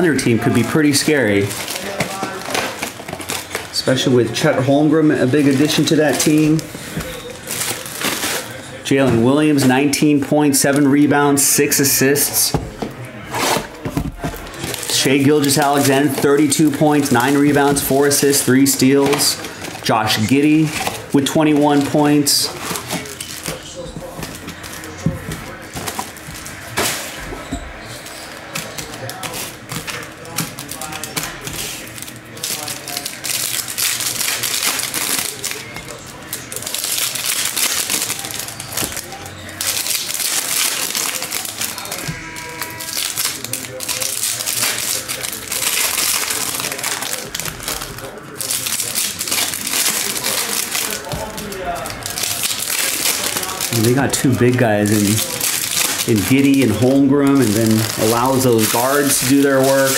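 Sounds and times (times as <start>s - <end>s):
foil wrappers tearing and crinkling: 0.1s - 8.8s, 13.2s - 27.4s, 28.0s - 59.9s.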